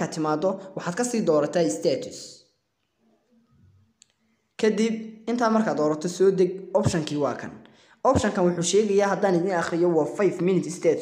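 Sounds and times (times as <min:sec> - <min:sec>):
man speaking: 0:00.0 - 0:02.6, 0:04.6 - 0:11.0.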